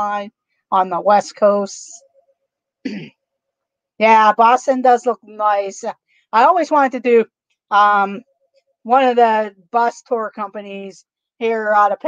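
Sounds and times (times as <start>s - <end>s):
woman clearing her throat: 2.9s - 3.2s.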